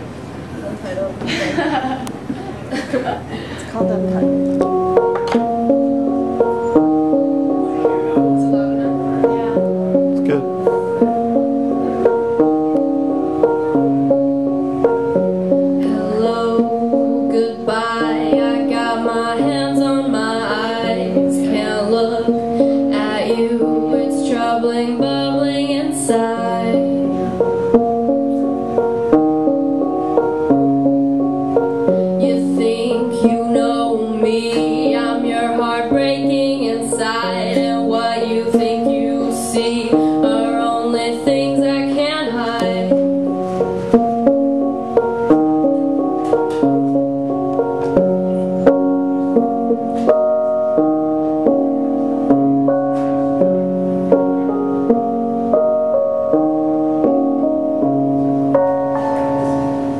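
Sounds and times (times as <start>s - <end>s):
electric keyboard chords: 0.0s - 59.9s
woman singing: 15.8s - 27.2s, 32.2s - 43.0s.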